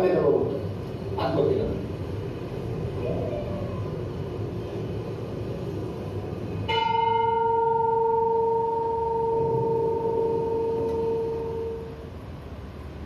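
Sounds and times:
bell ringing over speakers: 6.7 - 12.0.

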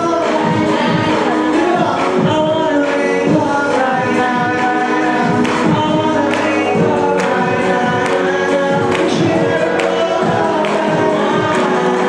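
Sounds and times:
person singing: 0.0 - 12.0
pop backing music: 0.0 - 12.0.

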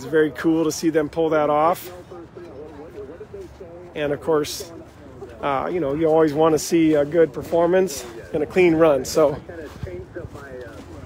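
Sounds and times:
close speaker talking: 0.0 - 11.0
faint background voices talking: 0.0 - 11.0.

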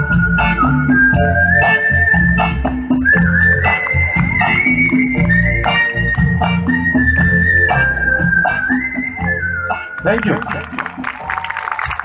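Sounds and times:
high whistle-like lead line: 0.0 - 10.2
drum beat with hi-hat: 0.0 - 11.0
live band playing through pa: 0.0 - 12.0.

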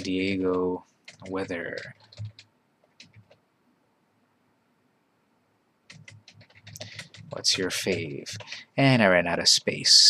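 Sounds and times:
computer keyboard keystroke: 0.0 - 3.4, 5.9 - 8.7.

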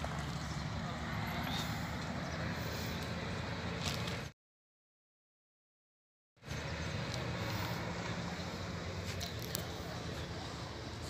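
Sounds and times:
low rumble with hiss: 6.5 - 11.0.

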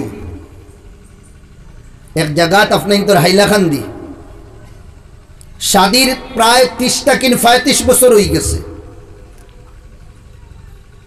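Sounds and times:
amplified speech: 2.2 - 4.3, 5.6 - 9.2.

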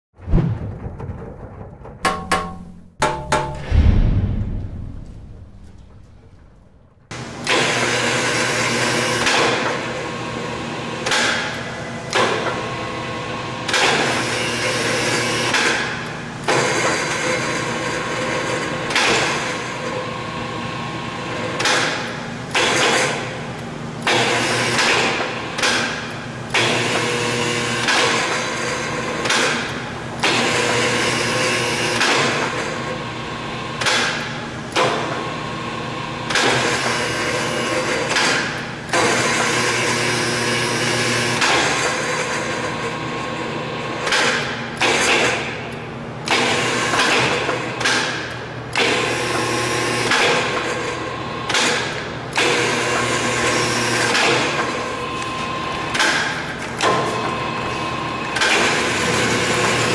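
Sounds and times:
loud mechanical surges: 3.6 - 7.1.

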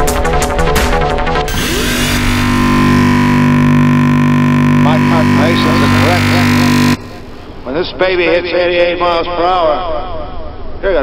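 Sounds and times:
synthesizer drone chord: 0.8 - 8.6
hissing noise layer: 1.5 - 8.3.

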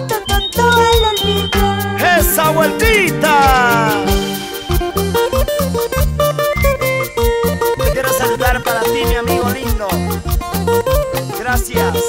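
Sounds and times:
bass: 0.0 - 12.0
steady drum beat: 1.6 - 9.8
plucked guitar melody: 1.6 - 12.0
person speaking: 2.0 - 4.6.

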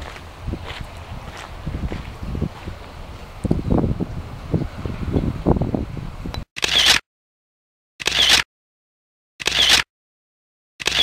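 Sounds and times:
footsteps on wet gravel: 0.0 - 3.3
wind on microphone: 0.0 - 6.4
camera handling noise: 6.6 - 7.0, 8.0 - 8.4, 9.4 - 9.9, 10.8 - 11.0.

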